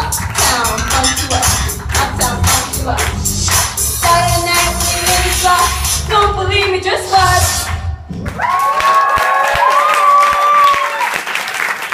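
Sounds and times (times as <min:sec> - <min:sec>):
audience clapping: 0:01.8 - 0:04.2, 0:08.1 - 0:11.9
audience woo calls: 0:08.2 - 0:11.2.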